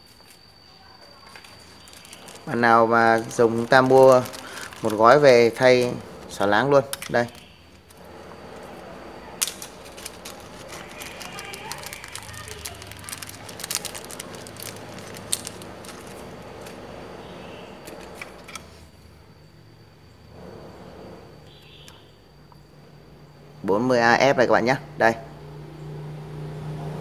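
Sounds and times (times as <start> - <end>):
plastic bag crinkling: 1.2 - 8.0, 9.3 - 18.6.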